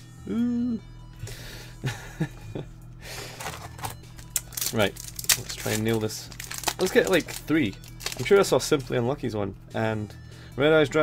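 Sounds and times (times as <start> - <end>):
foil pack crinkling: 3.2 - 8.8.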